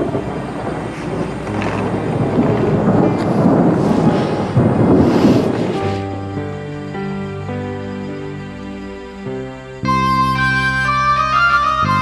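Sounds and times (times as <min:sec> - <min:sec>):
loud rushing rumbling noise: 0:00.0 - 0:07.6.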